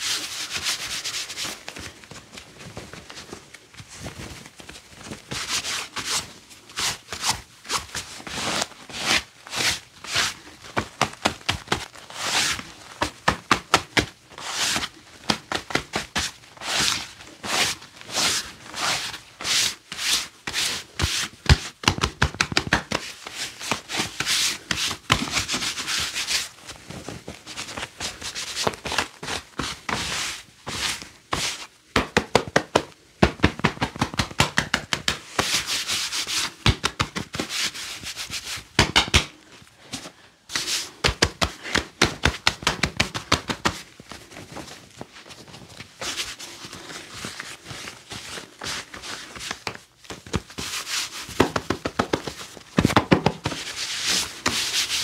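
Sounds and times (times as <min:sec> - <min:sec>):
gloved hands rubbing clothing: 0:00.0 - 0:55.0.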